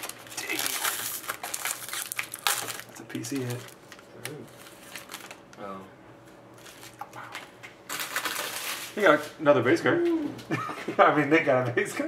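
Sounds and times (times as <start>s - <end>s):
cards rustling: 0.0s - 5.5s, 6.6s - 9.3s
plastic wrapper crinkling: 0.0s - 5.6s, 6.5s - 9.3s.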